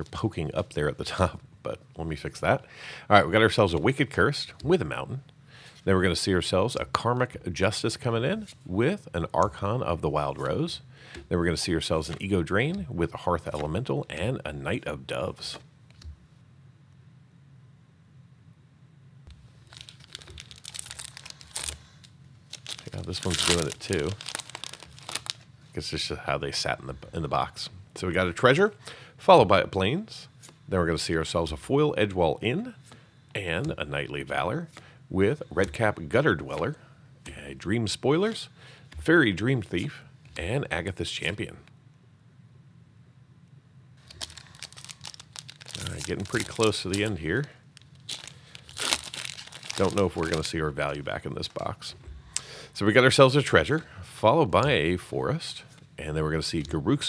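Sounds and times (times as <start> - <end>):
foil wrapper tearing: 19.6 - 25.4, 44.0 - 50.6
foil wrapper crinkling: 19.6 - 25.5, 44.0 - 50.7.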